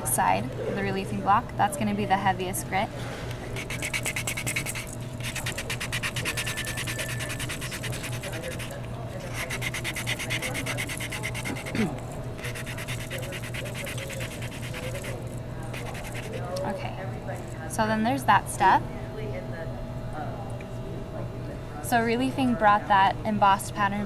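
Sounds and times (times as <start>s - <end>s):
block rasping on metal: 3.6s - 16.4s.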